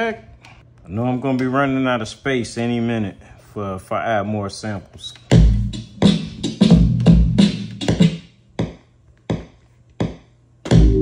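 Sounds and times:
drum sample hits: 5.3s - 11.0s.

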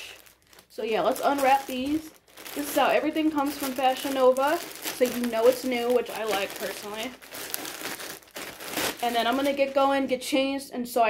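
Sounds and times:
plastic packaging crinkling: 0.0s - 10.2s.

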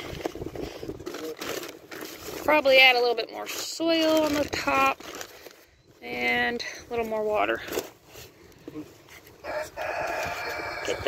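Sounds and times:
rooster crowing: 9.4s - 11.0s.

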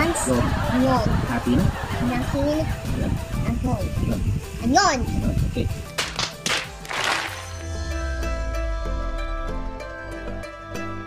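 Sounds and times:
background music: 0.0s - 11.0s
hand slaps: 6.0s - 7.4s.

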